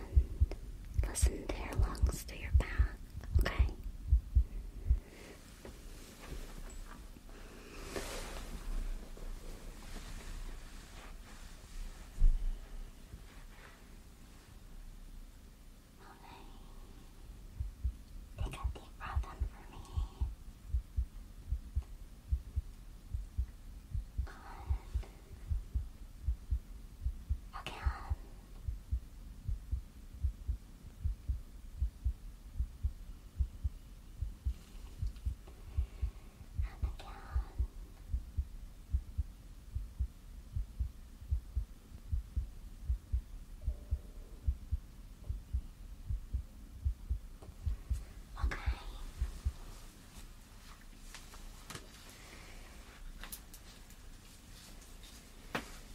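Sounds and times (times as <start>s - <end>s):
heartbeat through stethoscope: 0.0s - 5.1s, 12.2s - 12.7s, 17.5s - 49.8s.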